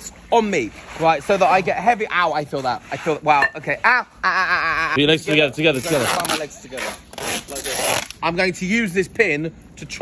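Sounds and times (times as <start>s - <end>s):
rough rubbing and scraping: 0.4s - 3.9s, 5.0s - 8.4s.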